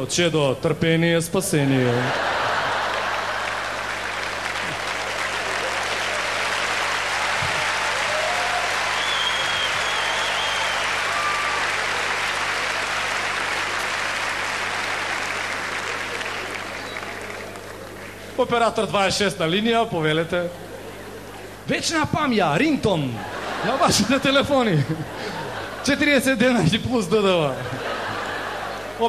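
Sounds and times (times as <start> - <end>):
audience applauding: 2.0 - 18.4.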